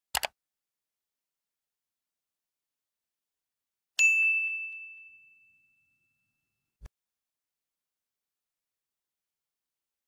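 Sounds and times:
high bell ding: 4.0s - 6.5s.

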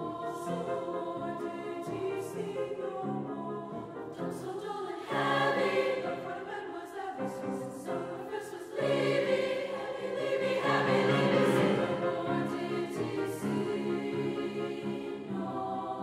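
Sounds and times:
treble choir singing: 0.0s - 16.0s.

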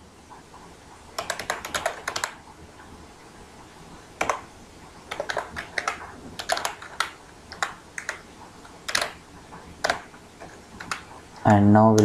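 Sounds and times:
computer keyboard typing: 1.2s - 2.4s, 4.2s - 12.0s.

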